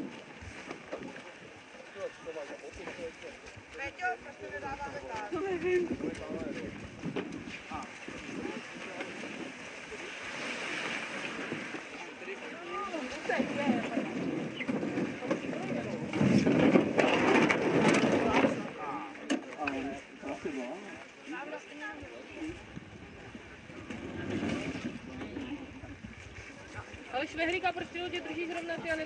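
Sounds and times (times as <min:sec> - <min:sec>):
rushing scraping noise: 0:13.1 - 0:18.8.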